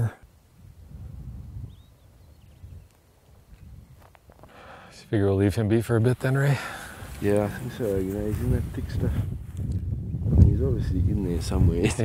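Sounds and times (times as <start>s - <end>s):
wind rumble on microphone: 0.5s - 4.4s, 7.1s - 12.0s.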